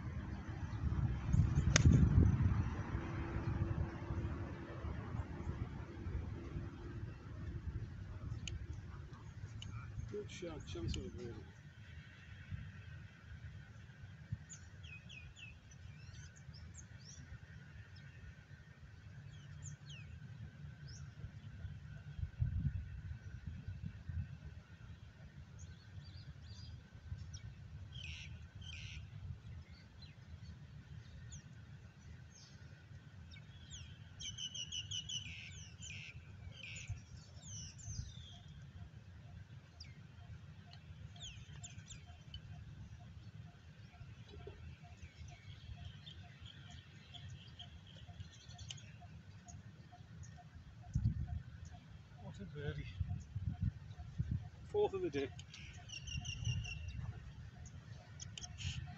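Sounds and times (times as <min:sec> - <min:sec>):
birds chirping and calling: 0:33.3 - 0:38.6, 0:40.7 - 0:58.9.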